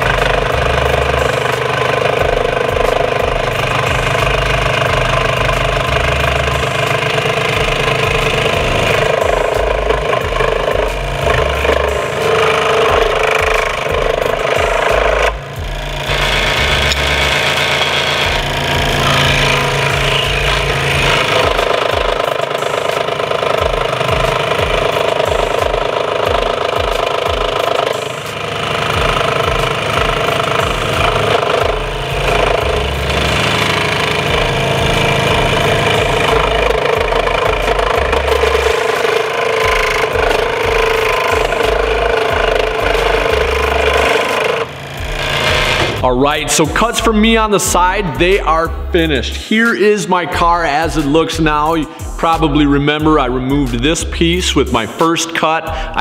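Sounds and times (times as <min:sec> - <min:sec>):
scroll saw buzzing: 0:00.0 - 0:47.8.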